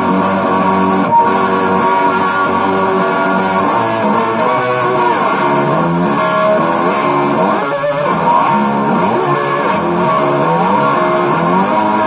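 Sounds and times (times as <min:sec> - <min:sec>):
sliding guitar notes: 0:00.0 - 0:12.0.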